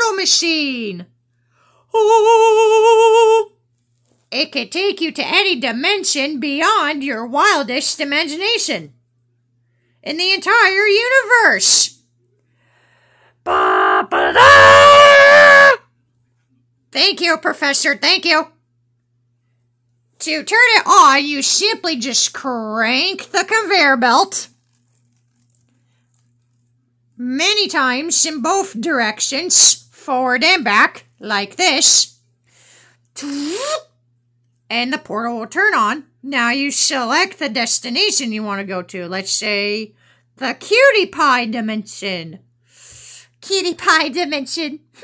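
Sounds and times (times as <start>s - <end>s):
person shouting: 13.4s - 15.9s.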